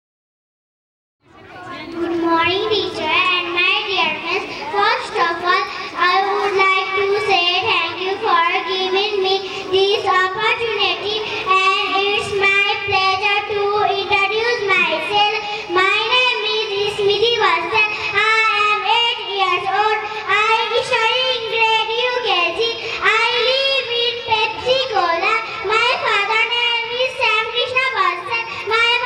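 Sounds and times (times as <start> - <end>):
girl singing into a microphone: 2.1 - 29.0.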